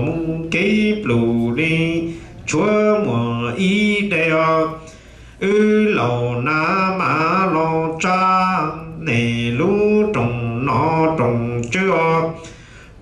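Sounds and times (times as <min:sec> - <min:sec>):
man chanting into a microphone: 0:00.0 - 0:12.6.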